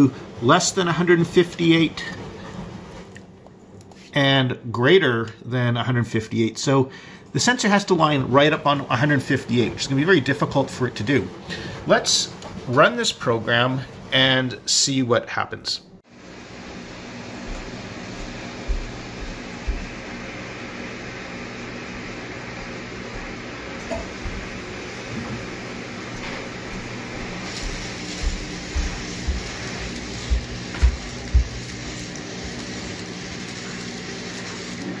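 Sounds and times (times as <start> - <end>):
steady hum: 15.9 - 35.0
robot motors and wheels turning: 27.4 - 35.0.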